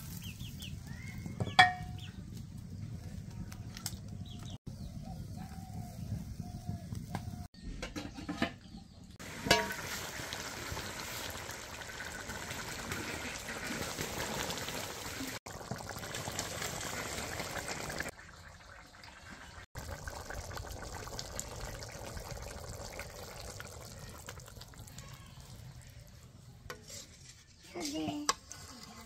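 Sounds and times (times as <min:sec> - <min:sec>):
curry bubbling: 0:09.2 - 0:29.0.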